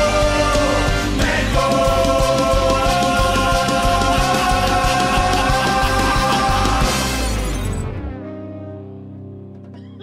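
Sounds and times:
ska band music: 0.0 - 7.3.

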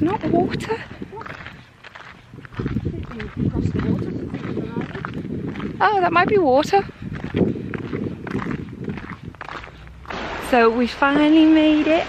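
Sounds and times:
footsteps walking: 0.0 - 10.2.

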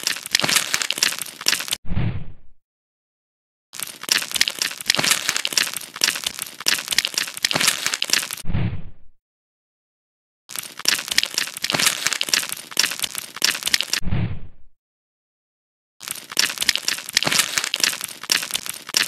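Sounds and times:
crunchy crackling scraping: 0.0 - 1.8, 3.8 - 8.4, 10.5 - 14.0, 16.0 - 19.0.

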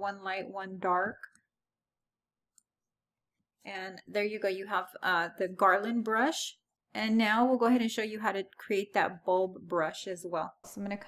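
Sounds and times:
woman speaking: 0.0 - 1.3, 3.7 - 11.0.

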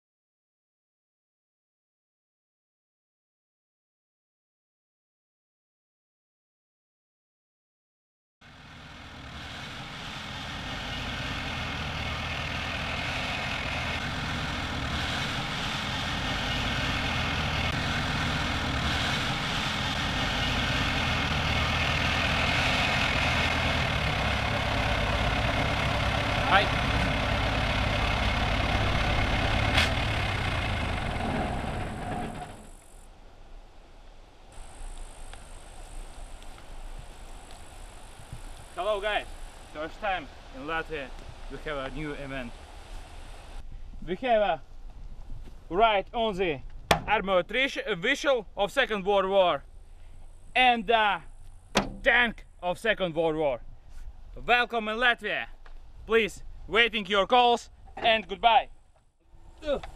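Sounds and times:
tracked vehicle engine running: 8.4 - 33.1, 34.5 - 43.6, 57.7 - 59.9.

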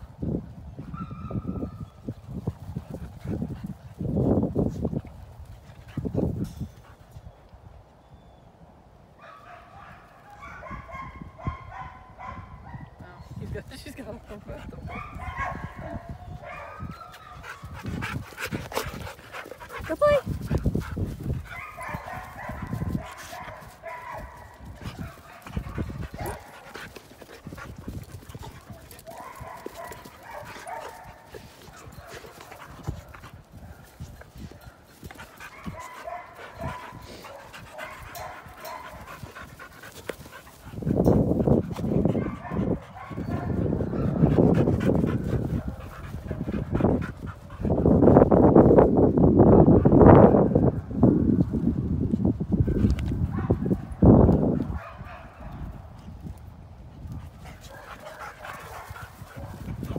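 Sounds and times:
dogs growling and playing rough: 17.4 - 23.8, 24.4 - 48.4.

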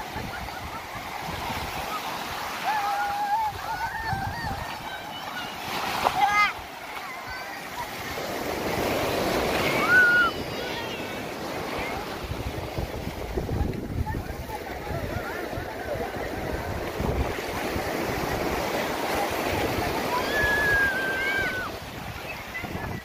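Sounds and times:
faint voices: 0.0 - 23.0
surf breaking on beach: 0.0 - 23.0
child calling: 2.6 - 7.9, 9.7 - 11.3, 20.1 - 21.8
wind buffeting microphone: 3.3 - 5.1, 11.4 - 23.0.

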